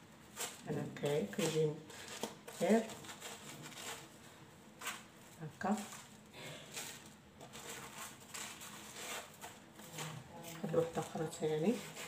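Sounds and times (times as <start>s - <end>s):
bread rustling and tearing: 0.0s - 12.0s.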